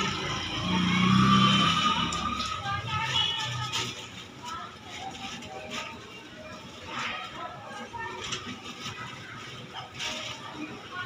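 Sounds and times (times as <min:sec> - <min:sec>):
indistinct voices: 0:00.0 - 0:11.0.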